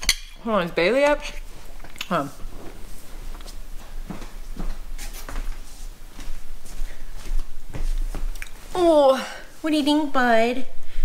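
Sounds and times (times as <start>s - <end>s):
rustling: 1.4s - 8.8s.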